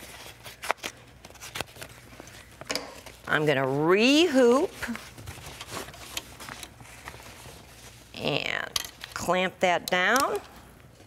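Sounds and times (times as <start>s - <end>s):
fabric rustling: 3.2s - 8.2s.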